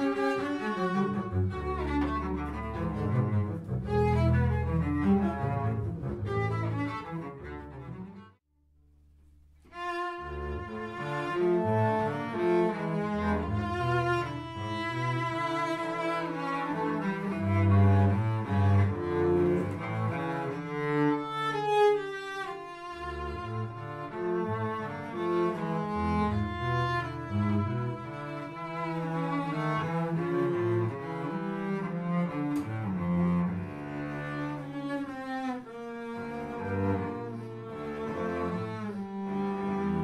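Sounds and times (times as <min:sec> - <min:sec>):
double bass low notes: 0:00.0 - 0:08.3, 0:09.0 - 0:21.8, 0:22.9 - 0:40.0
cello: 0:00.0 - 0:08.5, 0:09.6 - 0:40.0.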